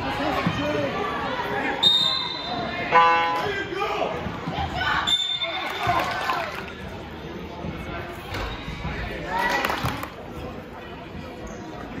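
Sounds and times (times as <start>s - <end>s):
players and spectators calling out: 0.0s - 10.3s.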